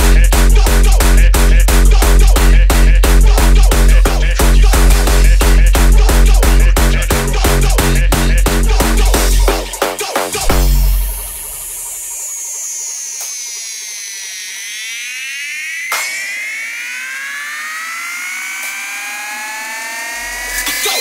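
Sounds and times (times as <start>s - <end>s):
kick drum and bass beat: 0.0s - 11.9s
whining synth gliding: 10.5s - 21.0s
single percussive hit: 15.9s - 16.6s.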